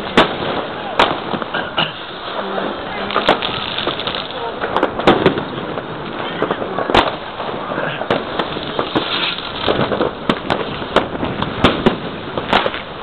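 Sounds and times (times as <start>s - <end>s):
distant fireworks: 0.0s - 13.0s
firework bangs and pops: 0.0s - 13.0s.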